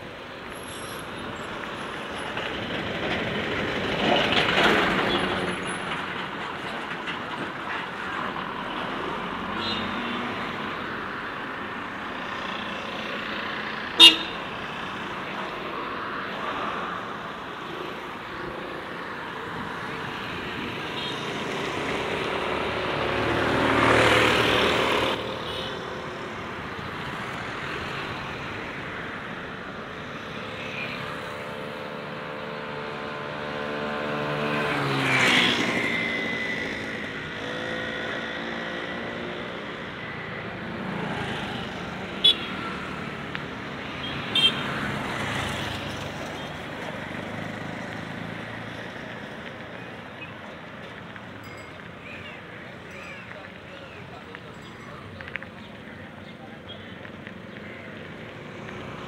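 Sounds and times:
vehicles passing close by: 0:00.0 - 0:59.0.

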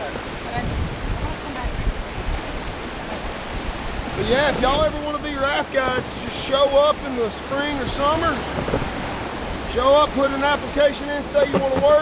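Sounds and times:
wind buffeting microphone: 0:00.0 - 0:10.8
whitewater rapids rushing: 0:00.0 - 0:12.0.

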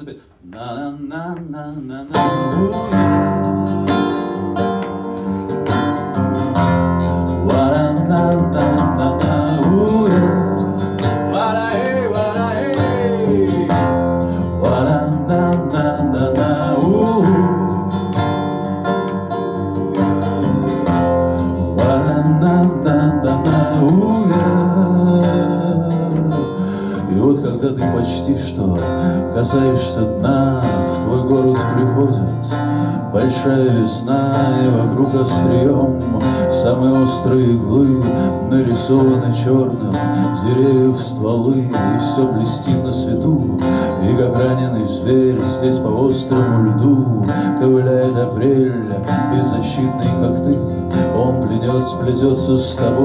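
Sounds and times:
acoustic guitar playing: 0:00.8 - 0:53.0.

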